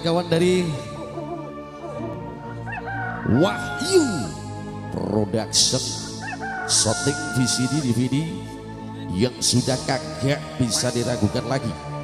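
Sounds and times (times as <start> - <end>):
sustained keyboard chords: 0.0 - 12.0.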